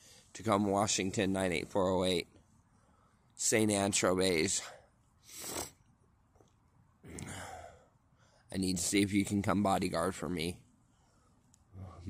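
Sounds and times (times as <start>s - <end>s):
person sighing: 7.1s - 7.8s.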